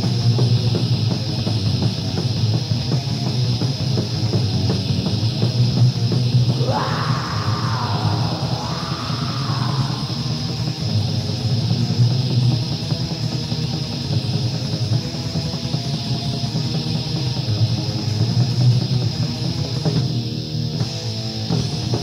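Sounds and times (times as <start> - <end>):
distorted metal guitars: 0.0 - 22.0
high recording hiss: 0.0 - 22.0.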